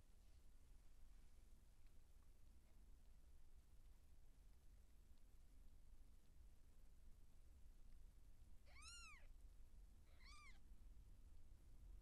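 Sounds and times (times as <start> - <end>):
kitten mewing: 8.7 - 9.3, 10.1 - 10.6.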